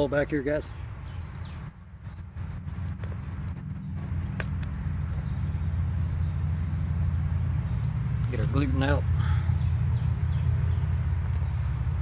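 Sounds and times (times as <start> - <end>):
low microphone rumble: 1.0 - 12.0.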